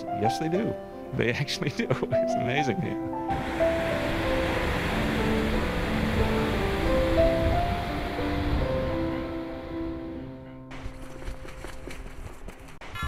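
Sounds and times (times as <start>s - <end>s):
slow held-note music: 0.0s - 10.9s
ocean surf breaking: 3.2s - 10.7s.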